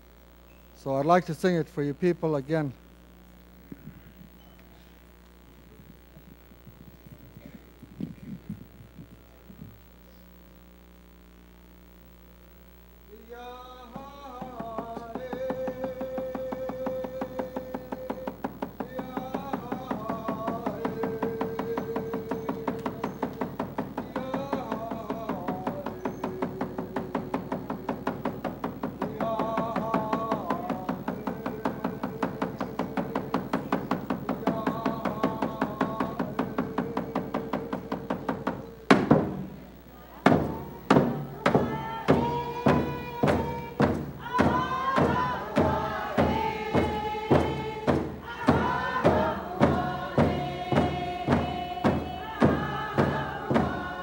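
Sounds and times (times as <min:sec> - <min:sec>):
man singing long held notes: 0:13.1 - 0:39.3, 0:40.7 - 0:54.0
frame drum beating: 0:13.9 - 0:54.0.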